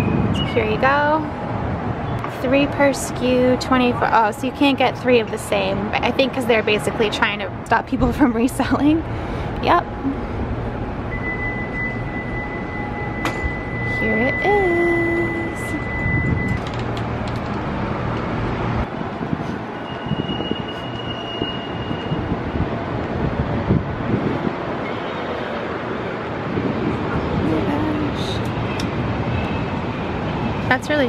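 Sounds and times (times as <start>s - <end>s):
traffic rumble: 0.0s - 31.0s
faint voices of passers-by: 24.9s - 28.8s.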